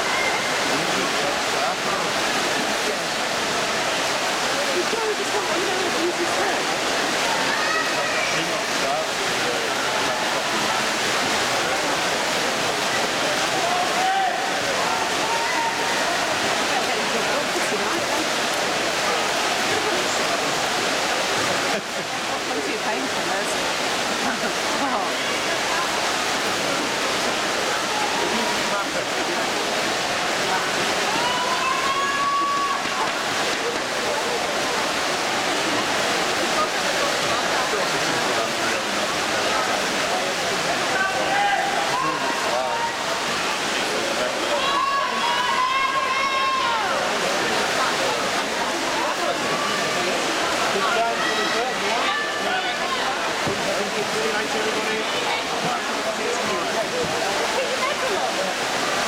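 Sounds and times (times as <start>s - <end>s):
crowd cheering in echoing hall: 0.0s - 1.8s, 7.2s - 8.7s, 11.5s - 17.0s, 30.4s - 33.9s, 40.9s - 53.4s.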